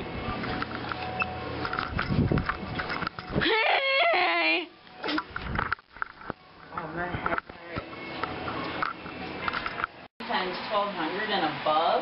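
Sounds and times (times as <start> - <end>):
person crying out loudly: 3.4 - 4.7.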